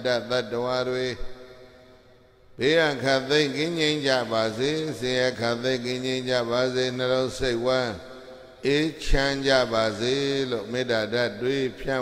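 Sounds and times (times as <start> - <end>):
man chanting: 0.0 - 2.0, 2.6 - 12.0.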